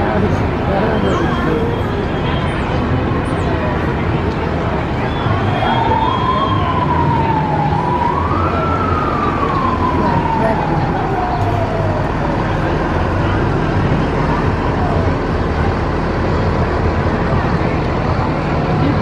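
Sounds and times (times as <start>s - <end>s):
low engine hum: 0.0s - 19.0s
street and crowd noise: 0.0s - 19.0s
siren winding down: 5.2s - 12.5s.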